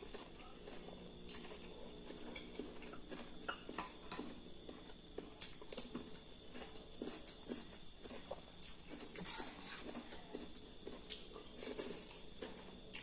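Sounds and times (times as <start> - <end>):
soft chewing: 0.0 - 13.0
steady high-pitched hum: 0.0 - 13.0.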